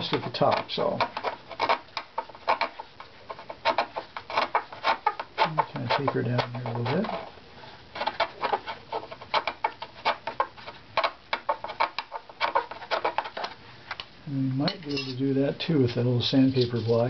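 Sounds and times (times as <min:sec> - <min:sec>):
scraper rasping on wood: 0:00.0 - 0:13.6.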